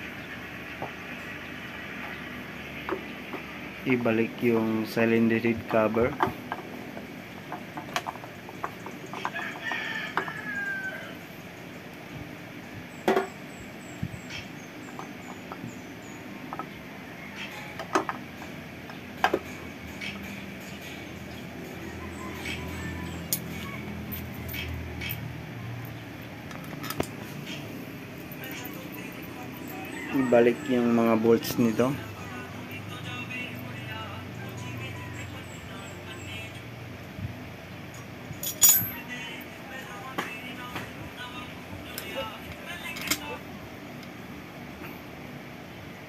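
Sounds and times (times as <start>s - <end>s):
rooster crowing: 9.1s - 11.3s, 16.9s - 18.2s, 21.7s - 25.7s, 29.4s - 32.1s.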